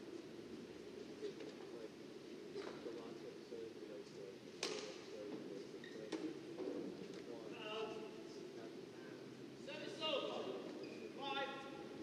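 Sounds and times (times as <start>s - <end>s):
murmur of voices: 0.0s - 12.0s.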